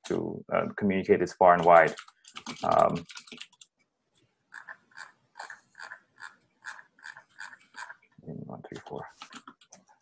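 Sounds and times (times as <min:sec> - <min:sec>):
keyboard keys clicking: 0:01.6 - 0:03.7.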